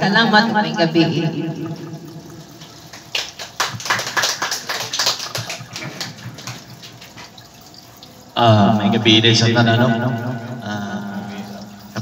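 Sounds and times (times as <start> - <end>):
audience clapping: 2.8 - 7.3.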